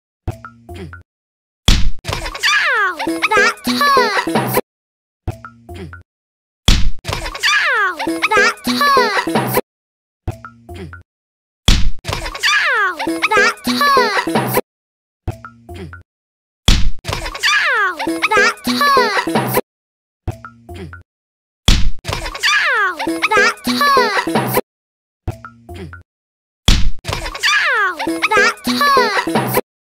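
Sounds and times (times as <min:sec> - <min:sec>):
cartoon girl giggling: 0:02.1 - 0:04.6, 0:07.1 - 0:09.6, 0:12.1 - 0:14.6, 0:17.1 - 0:19.6, 0:22.1 - 0:24.6, 0:27.1 - 0:29.6.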